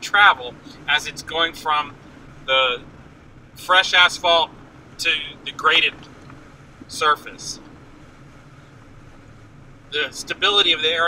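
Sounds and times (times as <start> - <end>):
road and wind noise: 0.0 - 11.0.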